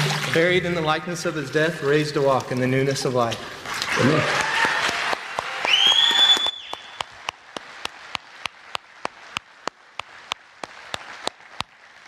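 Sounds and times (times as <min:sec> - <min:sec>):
congregation applauding: 0:03.5 - 0:12.0
person clapping close by: 0:04.4 - 0:11.8
high rising whistle: 0:05.7 - 0:06.9.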